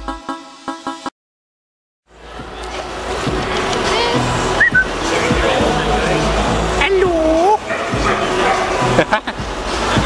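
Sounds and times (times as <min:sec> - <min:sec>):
background music: 0:02.1 - 0:10.0.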